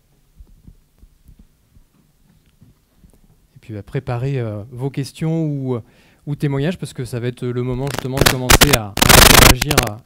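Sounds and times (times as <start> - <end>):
faint steady hum: 0.0 - 10.0
microphone handling thumps: 0.4 - 3.4, 7.7 - 9.9.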